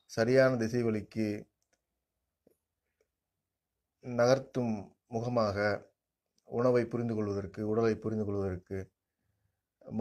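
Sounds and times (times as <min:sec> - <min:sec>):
man speaking: 0:00.0 - 0:01.6, 0:04.0 - 0:09.0, 0:09.8 - 0:10.0.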